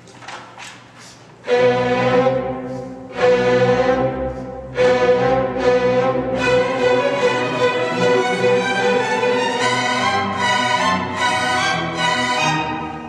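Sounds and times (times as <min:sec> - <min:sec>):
string section playing chords: 0:01.4 - 0:13.0.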